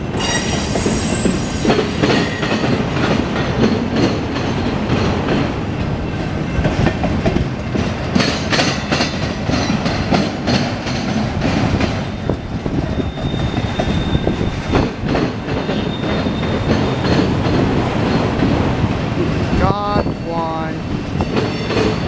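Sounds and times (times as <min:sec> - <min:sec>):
freight train wheels clattering: 0:00.0 - 0:20.2, 0:20.8 - 0:22.0
high wheel squeal: 0:00.2 - 0:02.5, 0:12.0 - 0:17.3.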